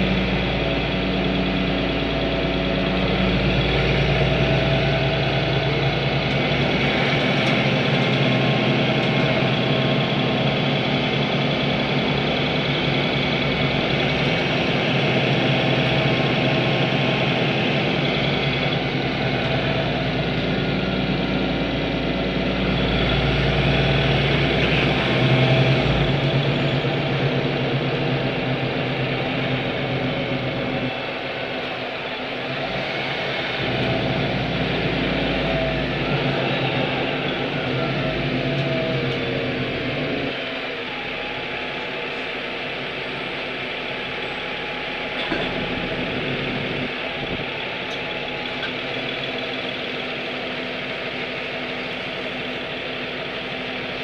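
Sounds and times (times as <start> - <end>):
bus engine drone: 0.0 - 54.0.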